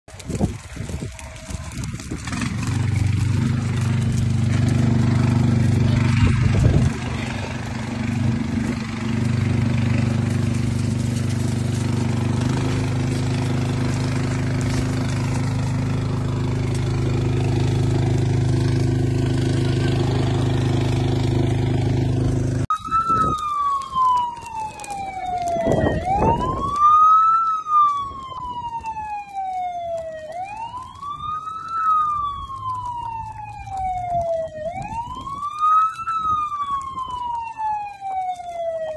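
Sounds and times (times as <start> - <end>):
emergency vehicle siren wailing: 0.1 - 38.9
heavy engine running: 0.3 - 22.7.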